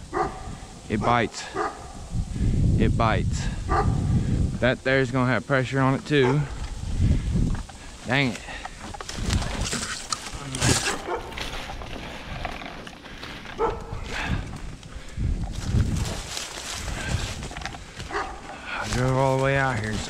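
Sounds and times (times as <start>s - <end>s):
footsteps crunching dry leaves: 5.9s - 20.0s
twigs rustling and snapping: 6.0s - 20.0s.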